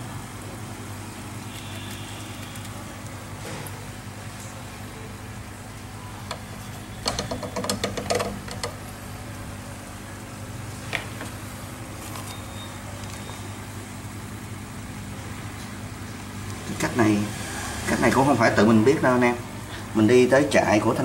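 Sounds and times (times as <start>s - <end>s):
aquarium air pump humming: 0.0s - 21.0s
light clicks and knocks: 7.0s - 8.8s.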